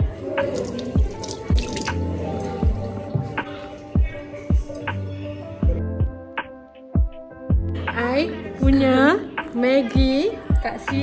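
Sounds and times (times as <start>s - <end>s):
background music with steady beat: 0.0s - 11.0s
tap water running into sink: 0.4s - 2.0s
chopsticks rinsed under water: 0.4s - 2.9s.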